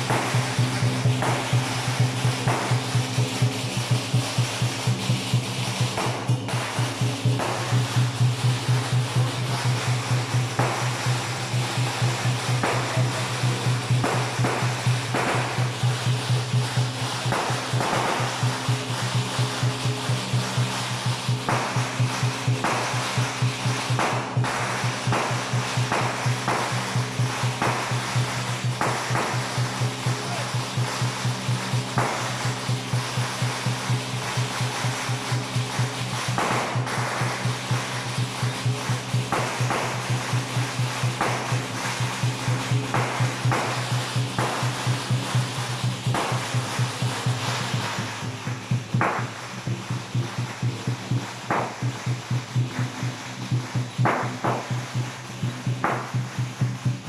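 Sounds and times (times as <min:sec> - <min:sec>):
cymbals: 0:00.0 - 0:57.0
drum beating fast rhythm: 0:00.0 - 0:57.0.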